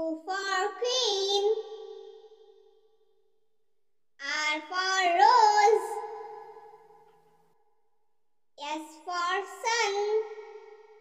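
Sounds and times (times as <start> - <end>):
child singing: 0.0 - 1.6, 4.2 - 6.0, 8.6 - 10.2.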